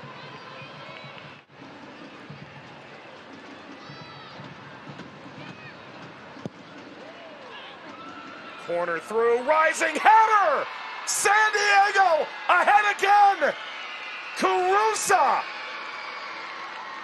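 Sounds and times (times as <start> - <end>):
stadium crowd hubbub: 0.0 - 17.0.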